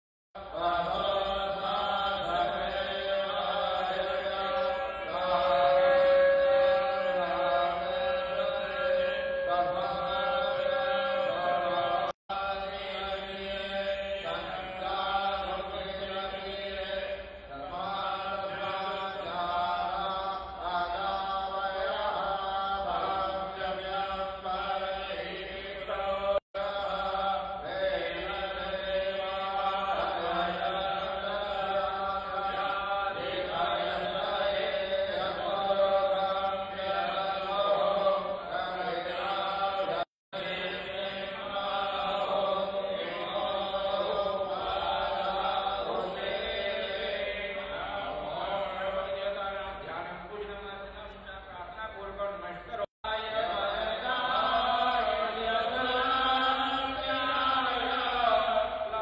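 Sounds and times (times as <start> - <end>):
man chanting into microphone: 0.4 - 59.0.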